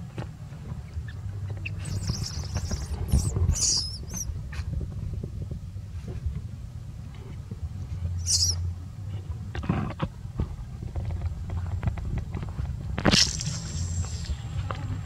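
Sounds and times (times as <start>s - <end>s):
baby monkey squealing: 1.0s - 4.3s, 8.2s - 8.6s.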